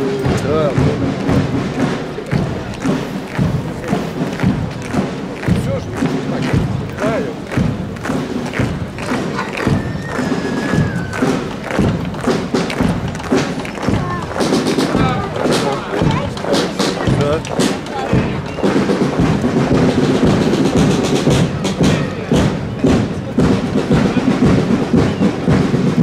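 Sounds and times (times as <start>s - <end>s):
boots marching on wet asphalt: 0.0s - 26.0s
murmur of crowd voices: 0.0s - 26.0s.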